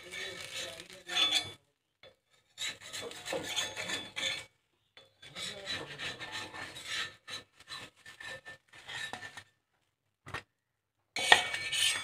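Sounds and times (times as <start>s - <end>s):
spatula scraping a griddle: 0.0s - 9.6s, 11.2s - 12.0s.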